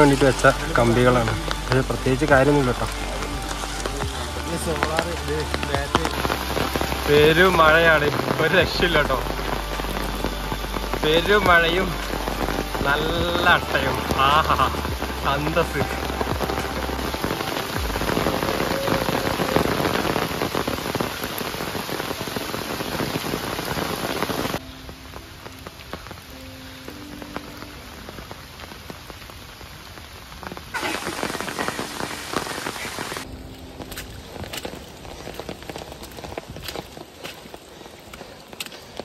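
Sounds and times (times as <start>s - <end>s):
footsteps on muddy trail: 0.0s - 12.1s, 30.7s - 39.0s
rain falling through forest: 0.0s - 39.0s.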